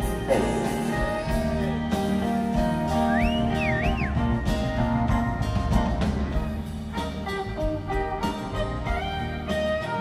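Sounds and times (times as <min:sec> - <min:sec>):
live band playing slow song: 0:00.0 - 0:10.0
high whistle: 0:03.0 - 0:04.6.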